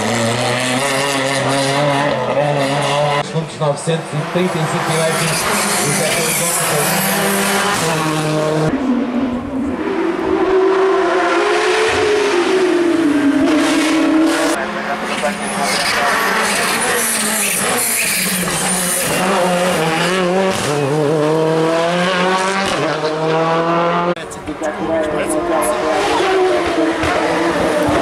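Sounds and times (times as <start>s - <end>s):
rally car engines revving: 0.0s - 28.0s.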